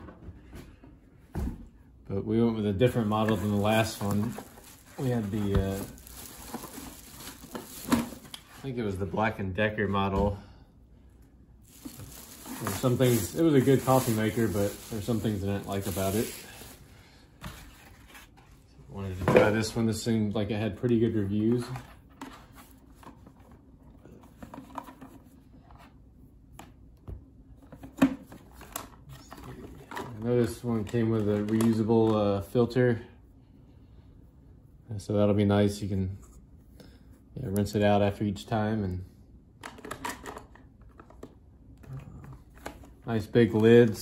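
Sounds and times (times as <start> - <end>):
soft plastic rustling: 2.8 - 9.0, 11.6 - 19.8.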